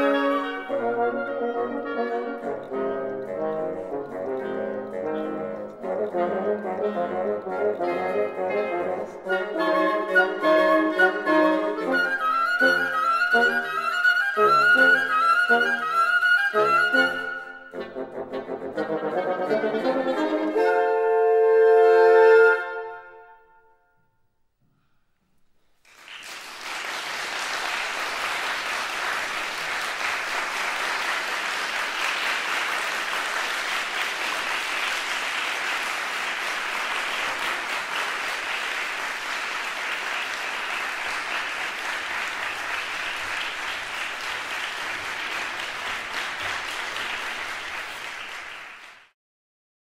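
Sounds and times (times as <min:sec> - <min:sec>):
audience applauding: 0:09.0 - 0:17.6, 0:25.8 - 0:49.2.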